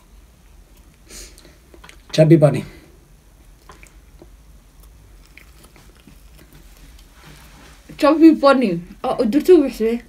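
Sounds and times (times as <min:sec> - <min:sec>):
wet mouth sounds: 0:03.5 - 0:07.1.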